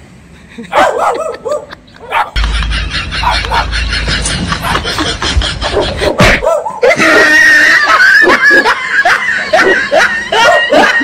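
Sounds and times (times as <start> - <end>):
person laughing loudly and shrieking: 0.5 - 11.0.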